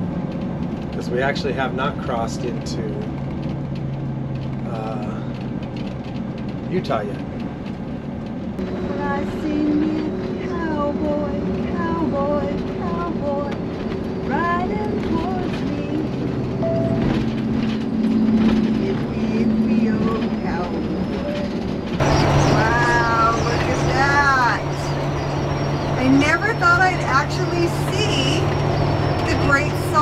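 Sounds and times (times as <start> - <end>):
bus engine and road drone: 0.0 - 30.0
person's voice: 1.0 - 3.1, 4.7 - 5.3, 8.9 - 13.6, 14.3 - 16.2, 18.8 - 21.6, 22.4 - 24.9.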